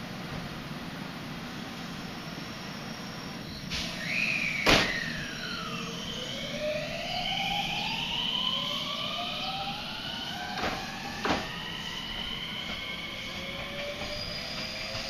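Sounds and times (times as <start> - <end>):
electric train motors whining: 1.6 - 15.0
sharp train clunk: 3.7 - 5.3, 10.5 - 15.0.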